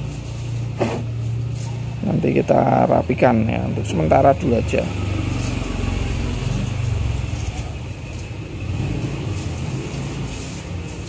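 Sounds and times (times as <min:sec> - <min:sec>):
vehicle engine rumbling: 0:00.0 - 0:11.0.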